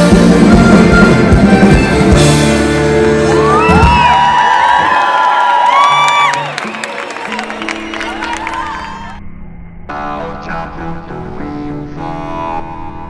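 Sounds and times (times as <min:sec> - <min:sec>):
live rock music: 0:00.0 - 0:04.5
crowd cheering and whistling: 0:03.0 - 0:09.2.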